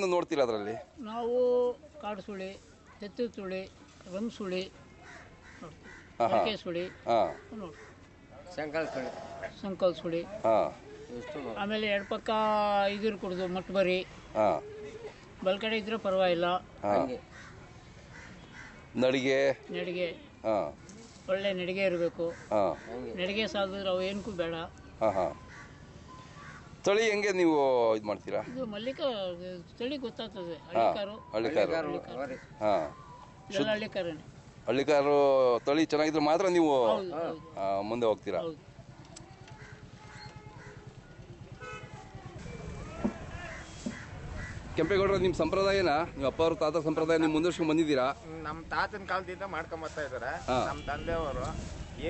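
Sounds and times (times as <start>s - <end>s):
faint bird calls: 4.9s - 8.2s, 17.0s - 19.0s, 25.1s - 26.9s, 31.2s - 34.1s, 38.8s - 44.8s
vehicle horn toot: 41.6s - 42.8s, 50.5s - 52.0s.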